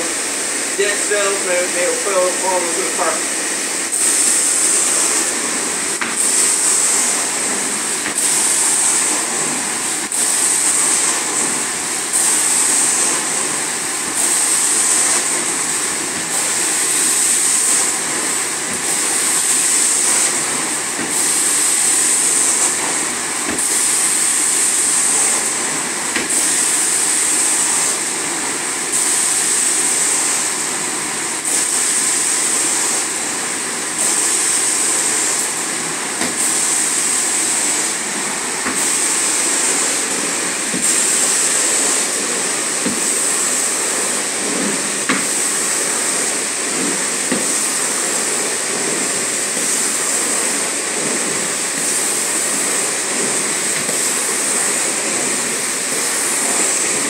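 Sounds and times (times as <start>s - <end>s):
carpet extraction wand rushing: 0.8s - 30.4s, 34.0s - 57.0s.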